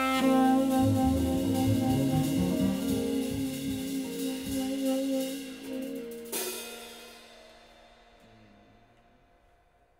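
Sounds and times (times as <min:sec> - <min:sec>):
upright bass: 0:00.0 - 0:05.1.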